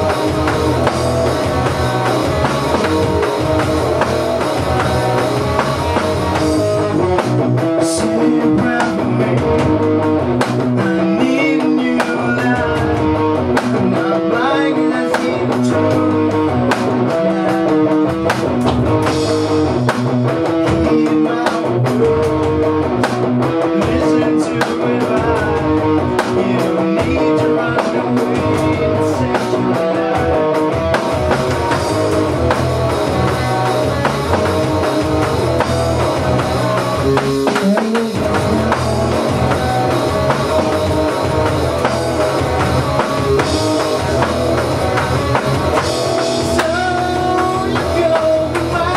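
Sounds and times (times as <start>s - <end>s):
rock band playing: 0.0s - 48.9s.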